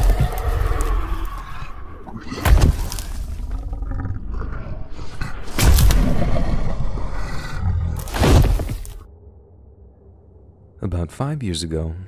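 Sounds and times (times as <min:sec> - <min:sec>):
monster growl: 0:00.0 - 0:08.7.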